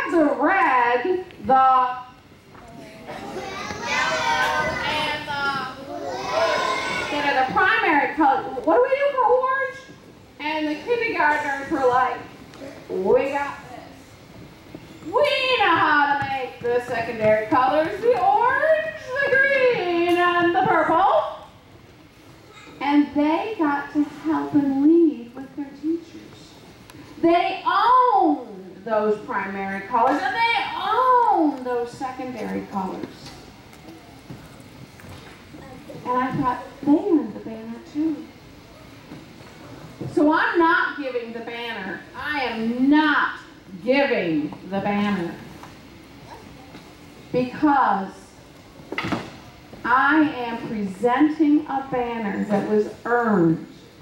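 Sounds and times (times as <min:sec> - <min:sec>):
woman speaking into microphone: 0:00.0 - 0:02.1, 0:07.1 - 0:12.3, 0:12.9 - 0:13.8, 0:15.1 - 0:21.4, 0:22.8 - 0:26.6, 0:27.2 - 0:33.3, 0:36.0 - 0:38.3, 0:40.1 - 0:45.5, 0:47.3 - 0:48.2, 0:49.8 - 0:53.8
children calling out together: 0:02.7 - 0:07.4.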